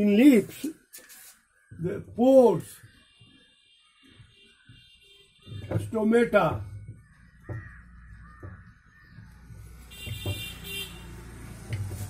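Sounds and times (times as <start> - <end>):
light knocks: 5.5 - 10.7
crow cawing: 6.8 - 10.0.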